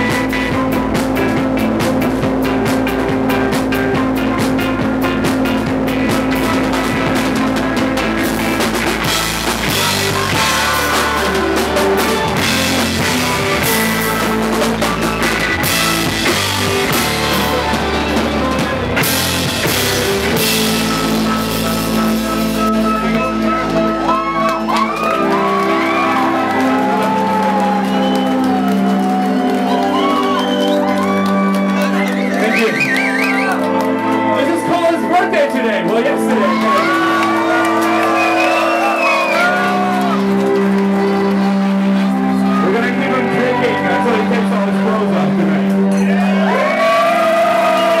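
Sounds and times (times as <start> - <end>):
live band music: 0.0 - 48.0
crowd whooping and shouting: 9.0 - 15.8, 23.1 - 35.0, 36.3 - 42.9, 45.9 - 48.0.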